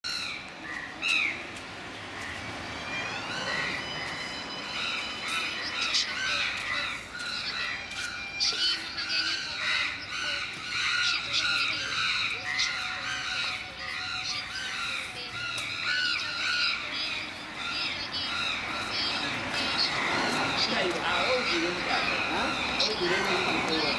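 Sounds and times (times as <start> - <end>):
birds chirping and squawking: 0.0 - 23.9
voices: 0.1 - 23.9.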